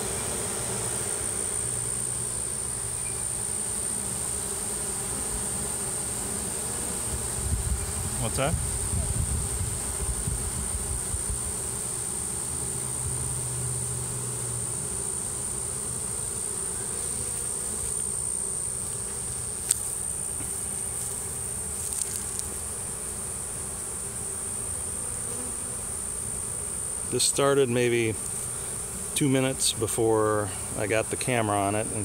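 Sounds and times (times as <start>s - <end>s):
honeybee swarm buzzing: 0.0s - 32.0s.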